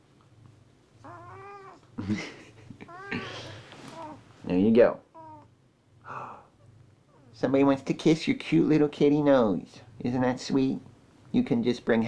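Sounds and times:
cat meowing: 1.0 - 1.8, 2.9 - 4.2, 5.2 - 5.5
man laughing: 2.0 - 3.5.

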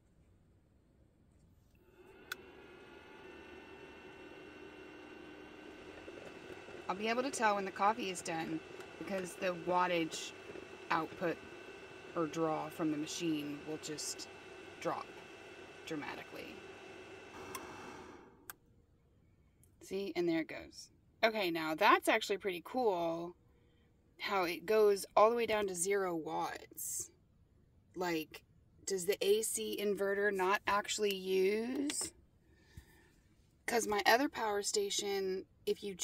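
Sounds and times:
coffee maker hissing: 1.8 - 18.4
electrical hum with high whine: 1.8 - 18.5
coffee maker heater click: 17.4 - 17.7.

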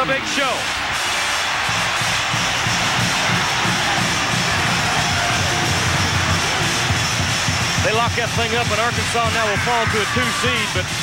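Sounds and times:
arena crowd cheering: 0.0 - 11.0
music with low rhythmic beat: 1.0 - 11.0.

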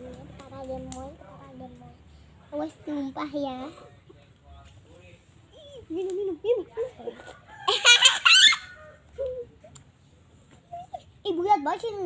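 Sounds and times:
girl shrieking laugh: 7.7 - 8.8.

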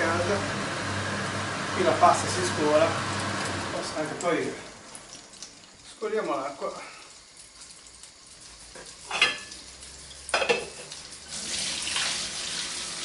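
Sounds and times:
water pouring into a sink: 1.8 - 13.0
meat sizzling in a frying pan: 7.5 - 13.0
pot clanking: 9.0 - 9.7, 10.3 - 10.9.

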